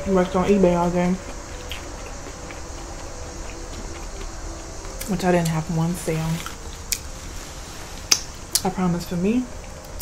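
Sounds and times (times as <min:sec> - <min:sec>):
low room hum: 0:00.0 - 0:10.0
quiet chewing: 0:00.4 - 0:08.8
faint mouth clicks: 0:08.1 - 0:08.7.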